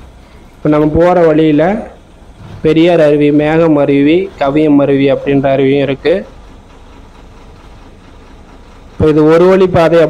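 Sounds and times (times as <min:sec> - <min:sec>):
bus engine running: 0:00.0 - 0:10.0.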